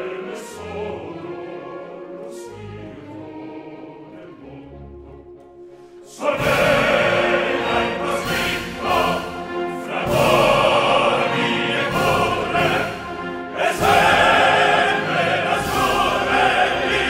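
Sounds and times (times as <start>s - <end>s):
full orchestra playing: 0.0s - 17.0s
operatic chorus singing: 0.0s - 17.0s.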